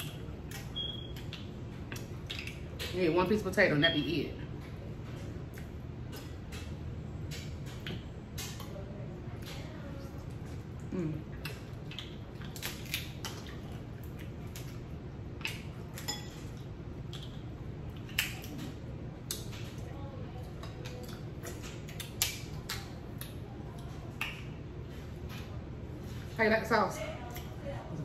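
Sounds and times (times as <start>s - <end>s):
low steady hum: 0.0s - 28.0s.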